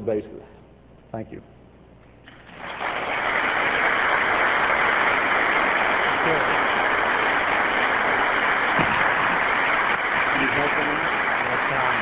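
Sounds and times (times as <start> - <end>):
audience applauding: 2.3 - 12.0.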